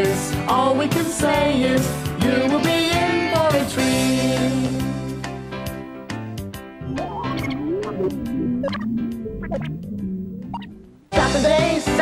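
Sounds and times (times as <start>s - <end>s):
squeaky warbling cartoon tone: 6.8s - 11.1s.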